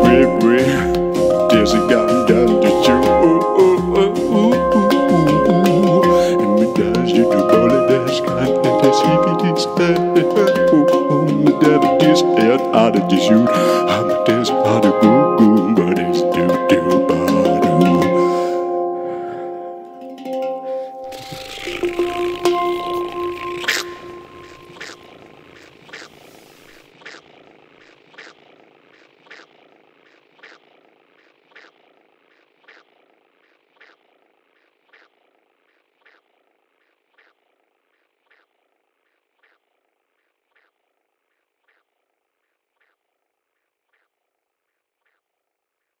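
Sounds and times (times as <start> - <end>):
music: 0.0 - 25.4.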